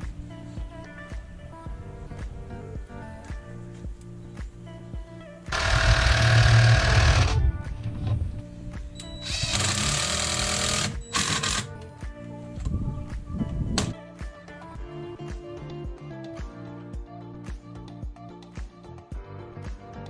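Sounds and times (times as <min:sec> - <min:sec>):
background music: 0:00.0 - 0:20.0
cordless drill driving screws: 0:05.5 - 0:07.4, 0:09.2 - 0:11.7.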